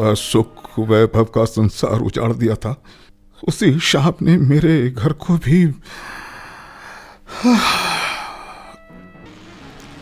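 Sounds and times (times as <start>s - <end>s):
faint background music note: 0.0s - 5.8s
man sighing heavily: 5.9s - 8.8s.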